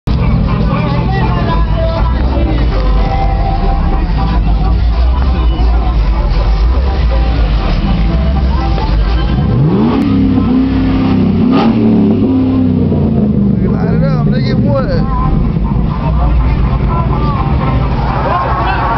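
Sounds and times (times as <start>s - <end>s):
car noise: 0.0s - 18.9s
music with deep bass: 0.1s - 18.9s
people's voices: 0.1s - 18.9s.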